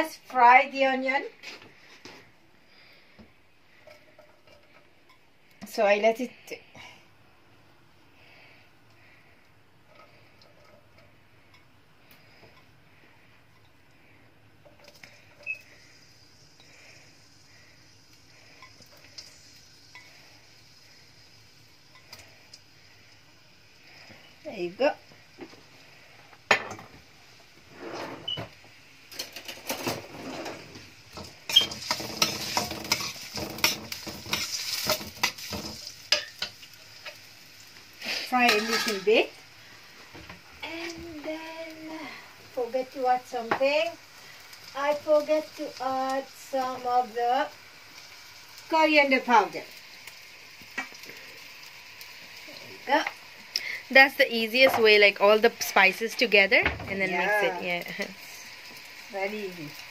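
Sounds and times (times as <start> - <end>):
onion sizzling in oil: 0.0 - 59.9
utensil scraping a pan: 27.6 - 28.4, 29.3 - 37.2, 38.0 - 39.3.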